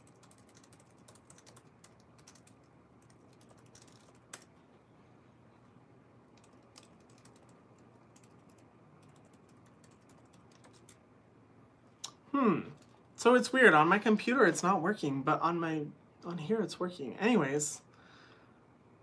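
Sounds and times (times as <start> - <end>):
typing on a keyboard: 0.0 - 4.5, 6.4 - 11.0.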